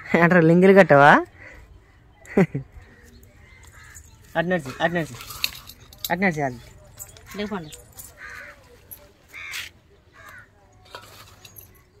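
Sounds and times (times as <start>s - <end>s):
bird calling: 1.2s - 11.9s.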